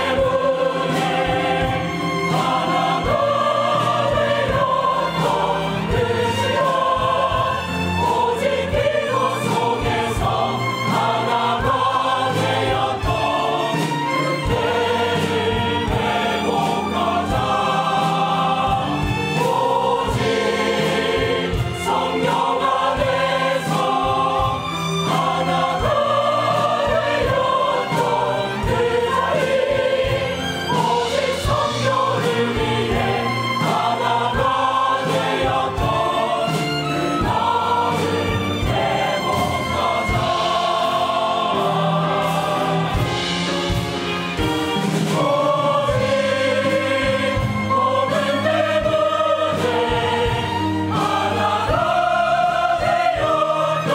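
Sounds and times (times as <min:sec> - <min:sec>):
mixed choir singing: 0:00.0 - 0:53.9
violins: 0:00.0 - 0:53.9.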